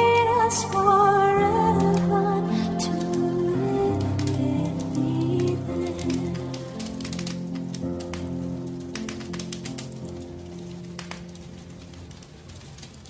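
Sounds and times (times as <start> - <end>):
christmas song held notes: 0.0 - 11.3
log fire crackling: 0.0 - 13.0.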